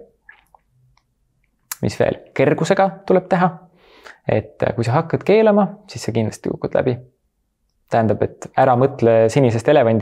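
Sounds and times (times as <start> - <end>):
man speaking: 1.7 - 7.2, 7.9 - 10.0.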